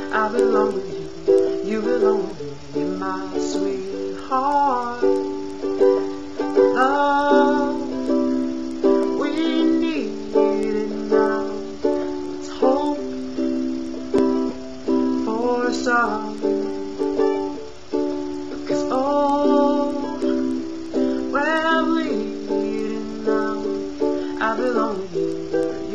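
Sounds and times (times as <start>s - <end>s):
ukulele strumming: 0.0s - 25.9s.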